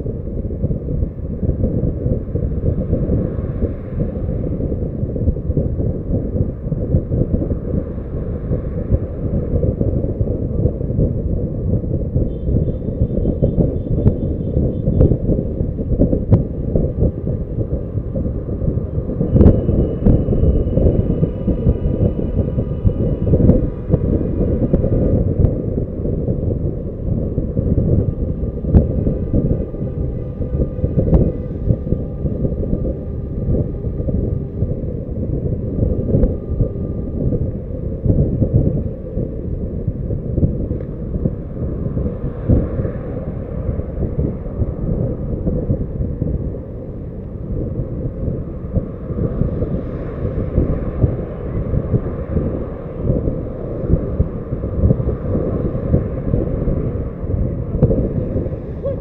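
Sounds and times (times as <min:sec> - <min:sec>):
road noise: 0:00.0 - 0:59.0
wind rushing over microphone: 0:00.0 - 0:59.0.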